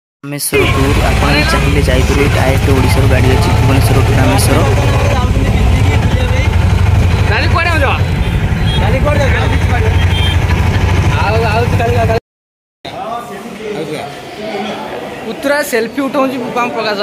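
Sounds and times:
road noise: 0:00.4 - 0:12.2
bus engine rumble: 0:00.5 - 0:12.2
passengers talking: 0:00.5 - 0:12.2.

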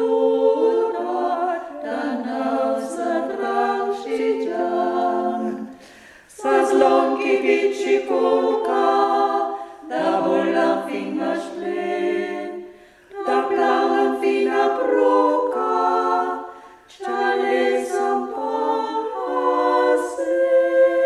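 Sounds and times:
women singing in harmony: 0:00.0 - 0:21.0.

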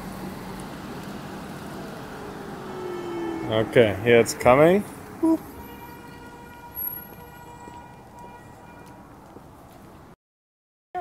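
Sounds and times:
faint street noise: 0:00.0 - 0:10.2.

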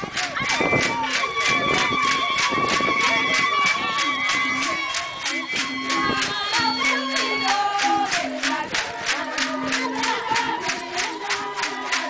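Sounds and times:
voices of a dense crowd: 0:00.0 - 0:12.0.

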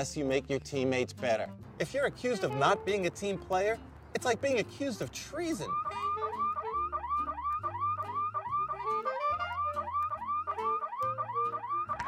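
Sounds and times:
electronic phone ringtone: 0:05.7 - 0:12.0.

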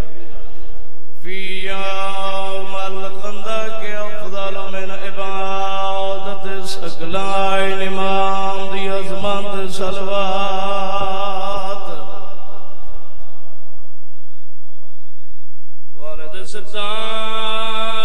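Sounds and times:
man chanting into a microphone: 0:01.2 - 0:13.1, 0:16.0 - 0:18.0.

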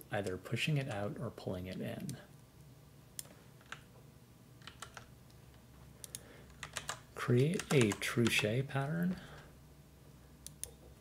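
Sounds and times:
computer clicks: 0:04.6 - 0:05.1, 0:06.0 - 0:08.5, 0:10.4 - 0:10.8.

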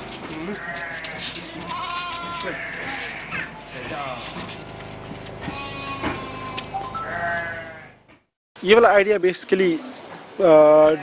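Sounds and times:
sheep and lambs bleating: 0:00.2 - 0:04.7, 0:05.3 - 0:08.0.

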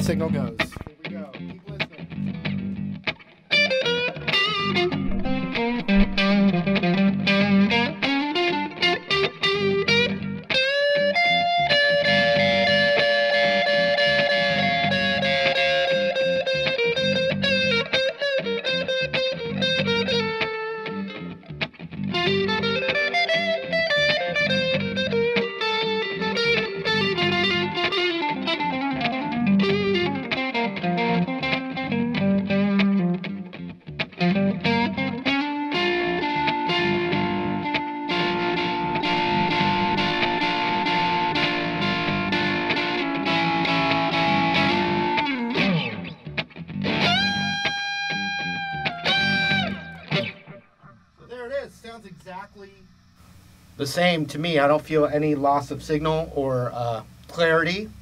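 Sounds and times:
electric guitar playing lead lines: 0:00.0 - 0:58.0.

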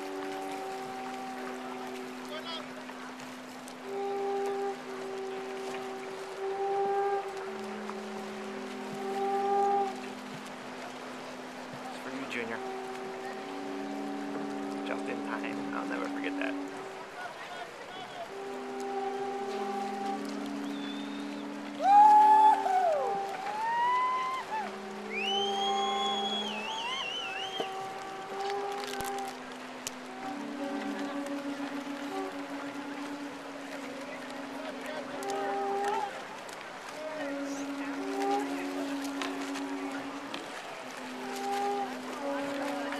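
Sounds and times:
conch shells blown: 0:00.0 - 0:17.2, 0:18.1 - 0:42.9.

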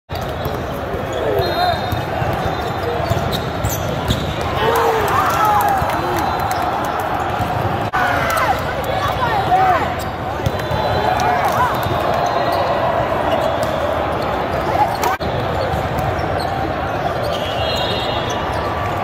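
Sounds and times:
sneakers squeaking on court: 0:00.1 - 0:04.6, 0:09.1 - 0:19.0.

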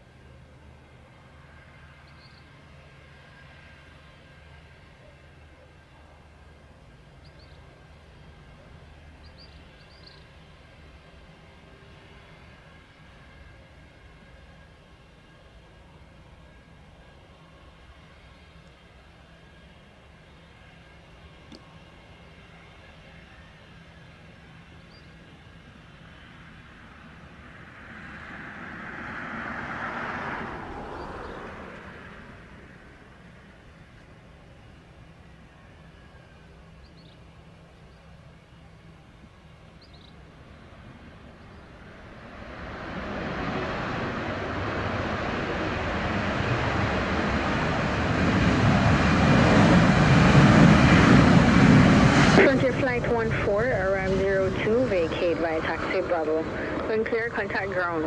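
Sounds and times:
jet engines in reverse thrust: 0:00.0 - 0:58.0.

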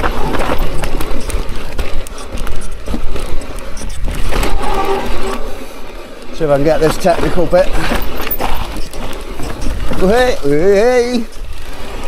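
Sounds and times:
bike rattling and knocking: 0:00.0 - 0:12.0
bike tyres rolling over dirt: 0:00.0 - 0:12.0.

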